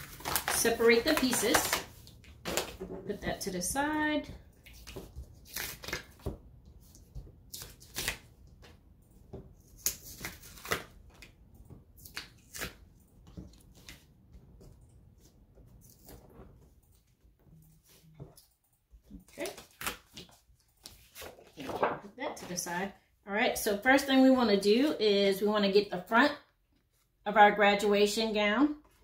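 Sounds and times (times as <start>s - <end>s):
paper rustles: 19.2s - 22.6s.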